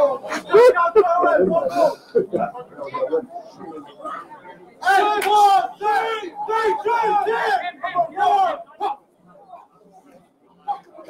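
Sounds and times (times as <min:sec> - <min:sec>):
people chattering: 0:00.0 - 0:11.0
loud held shout: 0:04.8 - 0:09.0.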